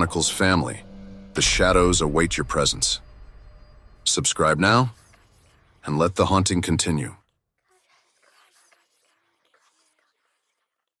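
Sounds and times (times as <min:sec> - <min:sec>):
narrator speaking: 0:00.0 - 0:03.1, 0:04.0 - 0:05.1, 0:05.8 - 0:07.3.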